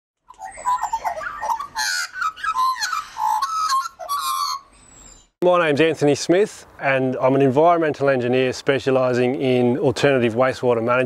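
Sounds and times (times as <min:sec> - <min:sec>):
bird squawk: 0:00.3 - 0:05.3
bird chirps and warbling whistles: 0:00.4 - 0:05.4.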